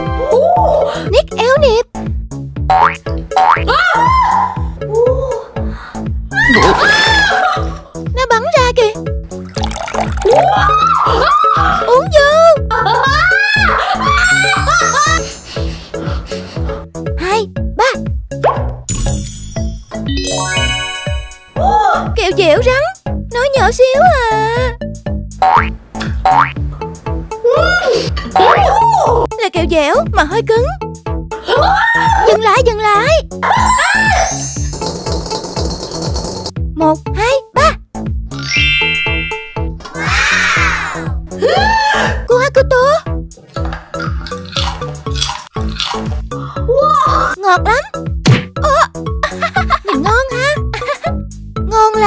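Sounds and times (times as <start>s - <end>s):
upbeat children's music: 0.0s - 52.0s
upward-sliding cartoon sound effect: 20.1s - 21.6s, 38.4s - 40.3s
cartoon boing effects: 25.4s - 25.7s.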